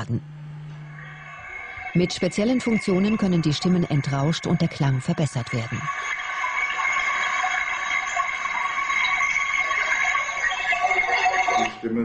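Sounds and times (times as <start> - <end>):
faint whistly tones: 0.9 - 12.0.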